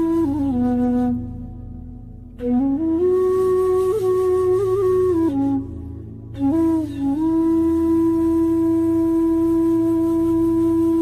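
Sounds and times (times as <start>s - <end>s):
bamboo flute long note: 0.0s - 11.0s.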